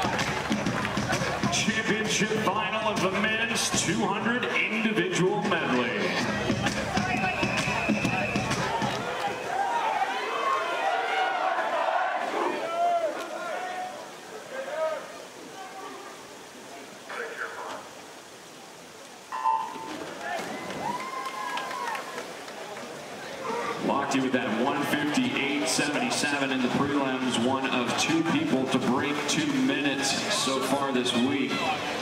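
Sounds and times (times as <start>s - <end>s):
crowd cheering: 0.0s - 4.7s, 5.6s - 16.8s, 19.3s - 32.0s.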